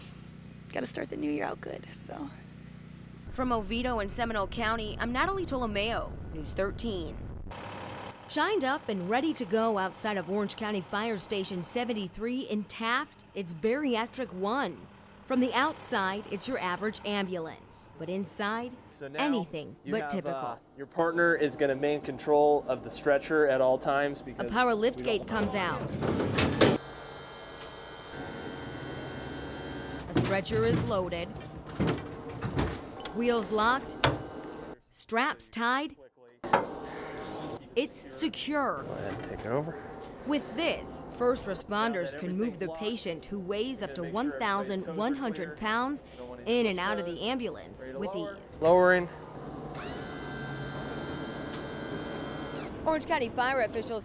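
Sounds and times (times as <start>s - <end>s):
electric lift motor humming: 7.4s - 19.0s, 21.7s - 34.8s, 49.2s - 53.9s
lift gate motor humming with whine: 25.2s - 34.8s, 49.2s - 53.0s.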